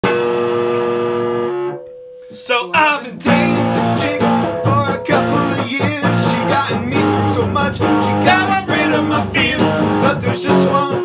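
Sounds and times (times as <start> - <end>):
guitar chord: 0.0 - 2.1, 3.3 - 11.0.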